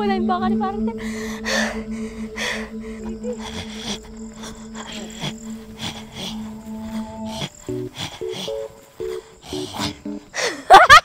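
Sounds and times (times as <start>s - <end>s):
low hum: 0.0s - 10.4s
breathy gasps: 1.0s - 10.7s.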